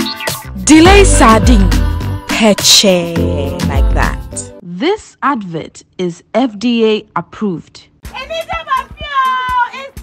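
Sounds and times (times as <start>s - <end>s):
music with drum beat: 8.0s - 10.0s
women's excited voices: 8.2s - 10.0s.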